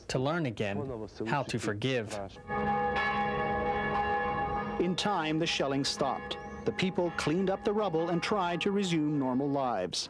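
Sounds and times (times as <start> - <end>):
church bell ringing: 2.4 - 9.9.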